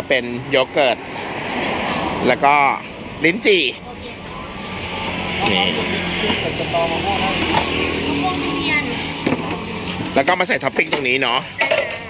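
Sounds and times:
road traffic passing: 0.0 - 12.0.

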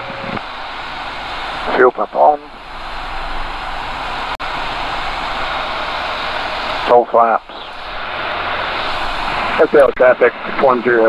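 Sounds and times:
aircraft engine and airflow drone: 0.0 - 11.0.

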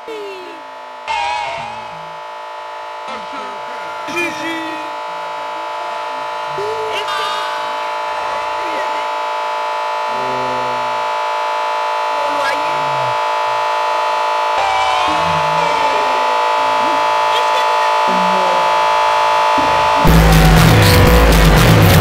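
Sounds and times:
electronic drone of stacked tones: 0.0 - 22.0
processed voice-like fragments: 0.0 - 22.0.

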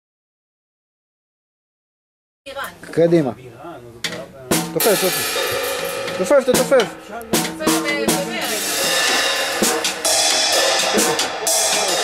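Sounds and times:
music: 4.0 - 12.0
acoustic drum hits: 4.1 - 12.0.

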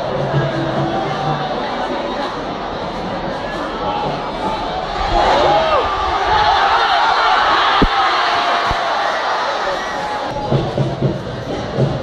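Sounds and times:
crowd shouting: 0.0 - 10.8.

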